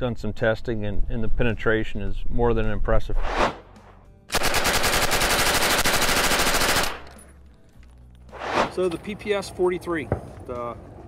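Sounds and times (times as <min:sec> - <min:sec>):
submachine gun full-automatic burst: 0:04.3 - 0:07.1.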